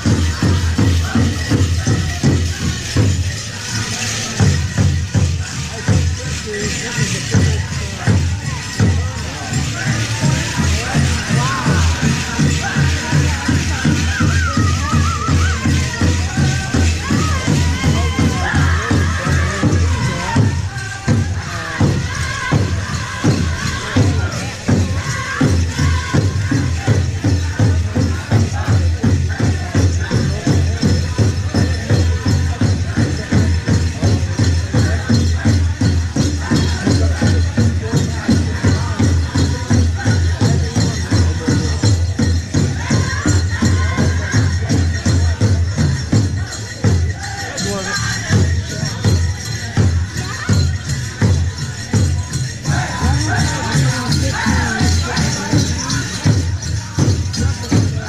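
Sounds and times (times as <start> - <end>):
drum group singing: 0.0 - 58.0
jingle of dancers' regalia: 0.0 - 58.0.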